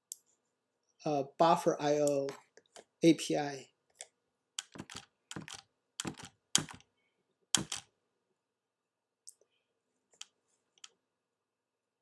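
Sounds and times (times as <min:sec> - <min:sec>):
computer keyboard keystrokes: 0:04.6 - 0:06.8, 0:07.6 - 0:07.8.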